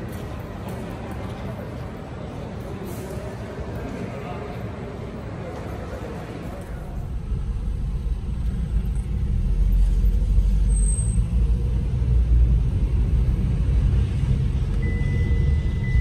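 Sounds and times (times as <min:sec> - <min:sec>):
road and engine rumble: 0:00.0 - 0:16.0.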